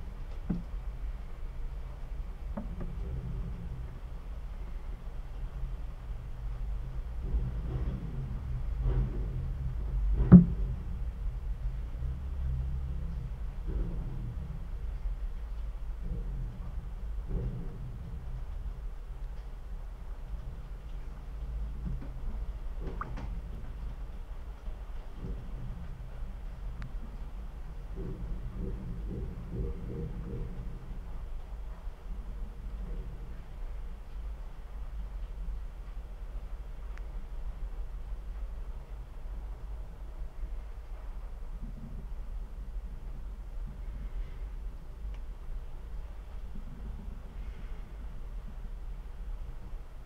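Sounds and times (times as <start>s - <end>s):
low underwater rumble: 0.0s - 50.0s
knocks underwater: 7.2s - 11.2s, 27.8s - 30.9s.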